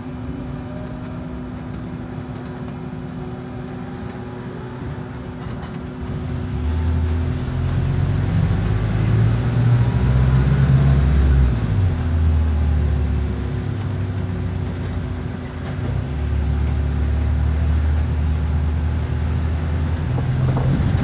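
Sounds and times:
bus engine drone: 0.0s - 21.0s.

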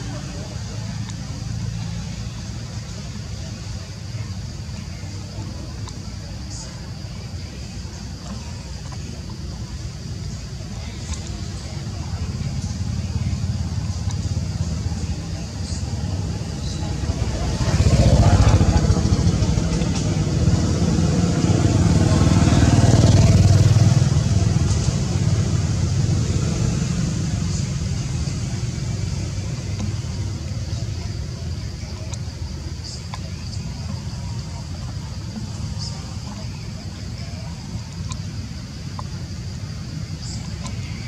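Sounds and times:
vehicle engine rumbling: 0.0s - 41.0s.

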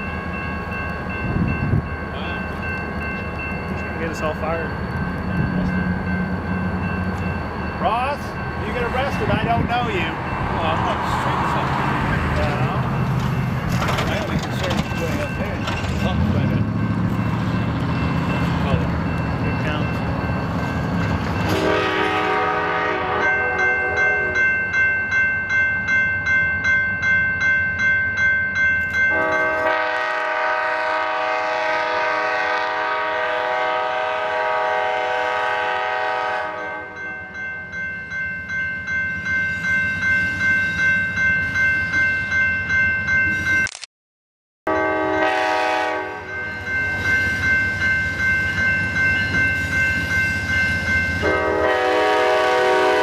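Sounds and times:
bell ringing in steady strokes: 0.0s - 11.6s, 12.4s - 21.8s, 23.1s - 29.8s, 36.5s - 43.7s, 46.1s - 51.7s
locomotive horn chord: 21.4s - 24.4s, 29.1s - 37.0s, 44.7s - 46.4s, 51.2s - 53.0s.

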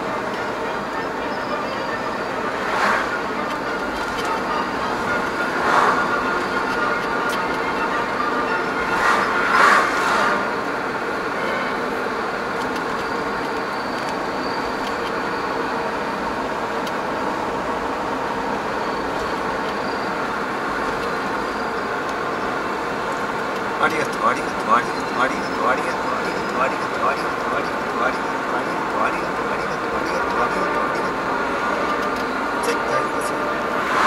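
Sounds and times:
car road and engine noise: 0.0s - 34.0s
oncoming cars passing: 0.0s - 34.0s.

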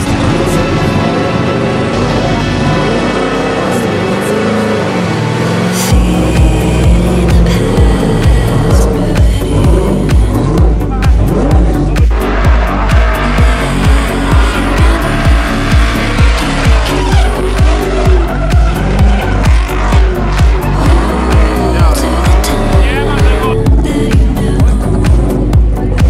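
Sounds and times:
car engine revving: 0.0s - 26.0s
music with steady beat: 5.9s - 26.0s.

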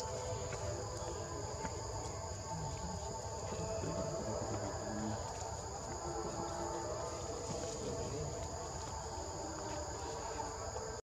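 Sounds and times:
insects droning: 0.0s - 11.0s.

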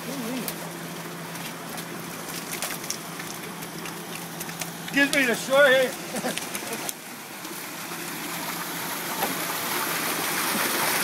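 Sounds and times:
low steady hum: 0.0s - 11.0s
water splashing into a tank: 0.0s - 11.0s.

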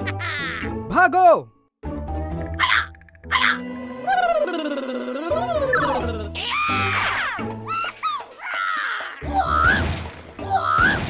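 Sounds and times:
background music: 0.0s - 11.0s
creature yelping cries: 2.5s - 9.8s.

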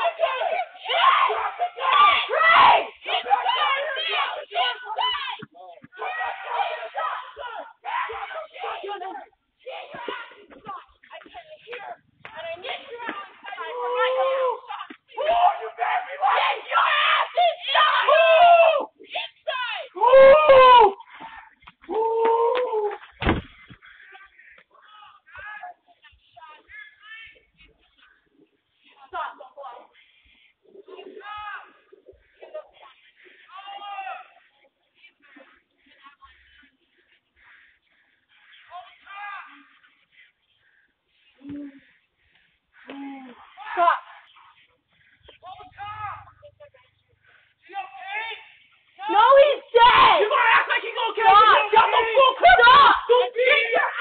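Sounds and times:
voices screaming and yelling: 0.0s - 54.0s.

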